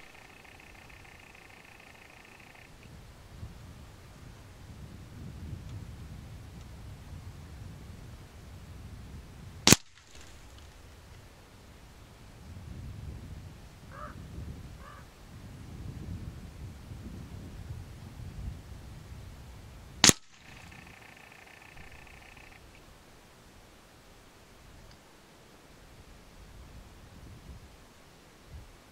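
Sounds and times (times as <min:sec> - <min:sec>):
wind rumbling on microphone: 0:00.0 - 0:25.0, 0:25.7 - 0:28.9
air rifle shots: 0:09.6 - 0:10.7, 0:20.0 - 0:22.2.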